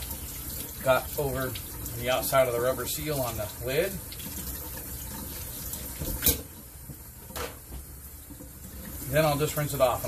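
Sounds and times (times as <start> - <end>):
faucet running into metal sink: 0.0 - 6.6.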